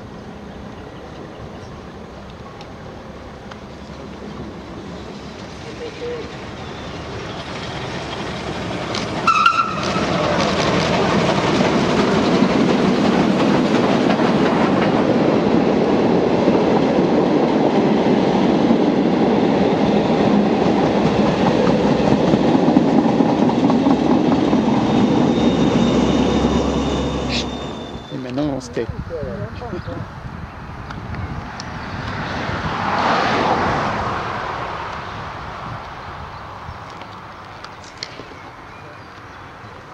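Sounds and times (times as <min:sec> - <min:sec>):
steam train wheels rumbling and clattering: 0:00.0 - 0:28.4.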